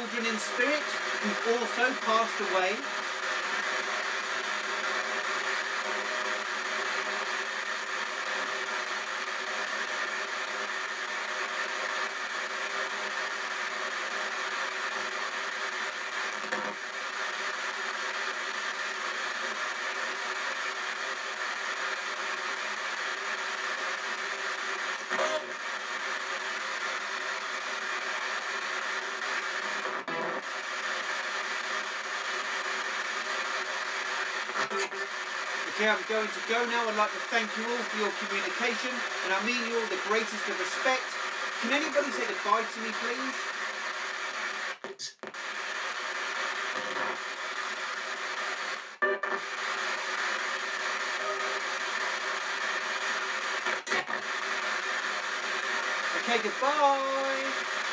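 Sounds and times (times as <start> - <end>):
radio static hiss: 0.0 - 57.9.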